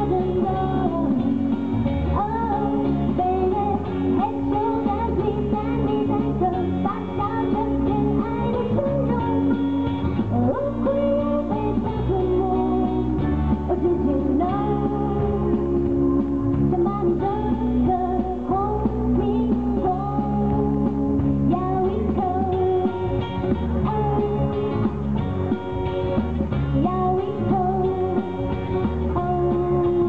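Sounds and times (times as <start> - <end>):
woman singing pop song: 0.0 - 25.9, 26.6 - 30.0
instrumental accompaniment: 0.0 - 30.0.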